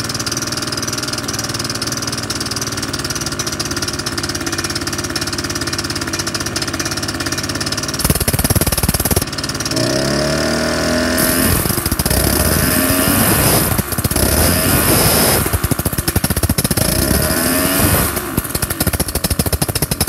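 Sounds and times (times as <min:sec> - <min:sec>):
propeller engine idling: 0:00.0 - 0:20.0.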